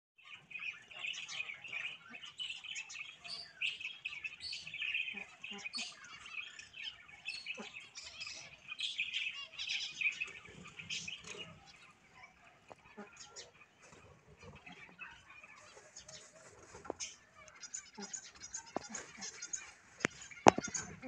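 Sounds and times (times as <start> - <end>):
small birds chirping: 0.2 - 21.0.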